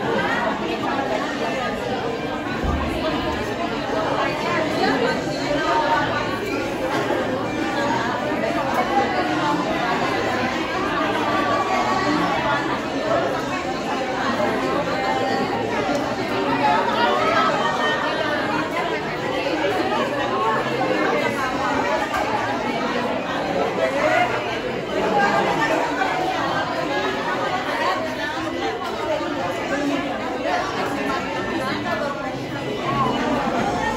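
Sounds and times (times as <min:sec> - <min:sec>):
women chattering: 0:00.0 - 0:33.9.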